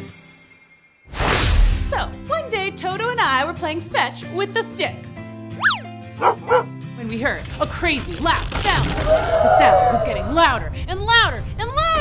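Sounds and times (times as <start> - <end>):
background music: 0.0 - 12.0
cartoon dog yapping: 5.6 - 6.7.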